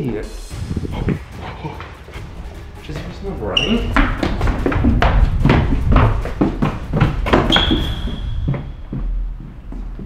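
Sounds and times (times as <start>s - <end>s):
footsteps on wooden stairs: 2.9s - 10.0s.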